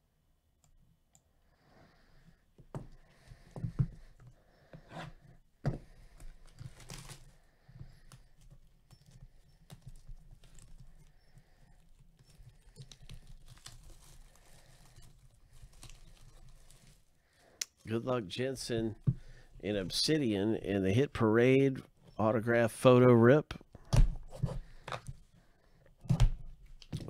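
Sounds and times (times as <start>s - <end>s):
cardboard rustling and scraping: 4.8s - 17.2s.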